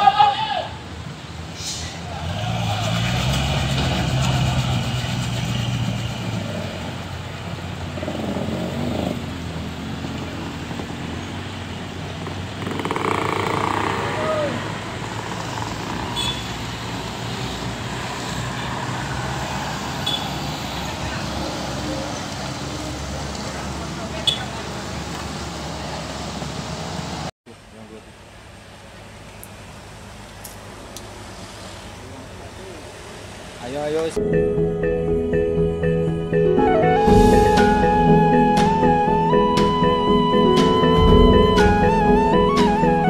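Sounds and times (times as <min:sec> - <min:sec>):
background traffic: 0:00.0 - 0:43.0
motorcycle and car engines passing: 0:02.0 - 0:27.3.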